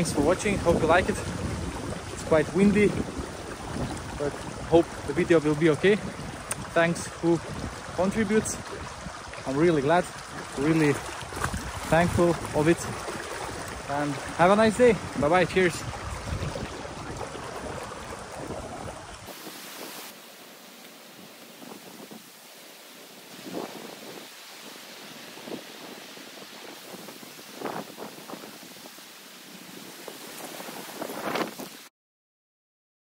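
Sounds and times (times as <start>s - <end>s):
wind buffeting microphone: 0.0s - 20.0s, 23.3s - 31.8s
water rushing down a channel: 0.0s - 31.9s.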